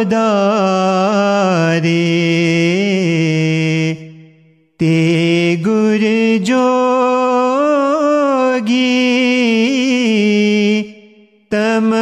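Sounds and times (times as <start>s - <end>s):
man singing a hymn: 0.0s - 4.0s, 4.8s - 10.9s, 11.5s - 12.0s.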